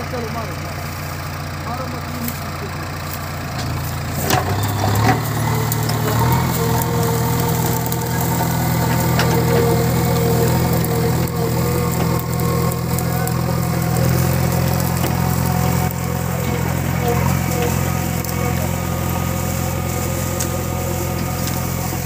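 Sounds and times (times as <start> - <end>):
diesel engine running: 0.0 - 22.0.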